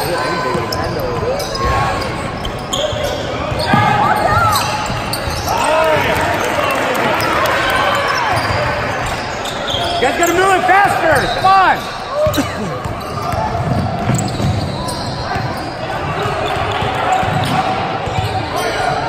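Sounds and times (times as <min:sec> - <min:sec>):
sneaker squeaks: 0:00.0 - 0:05.8, 0:07.1 - 0:19.0.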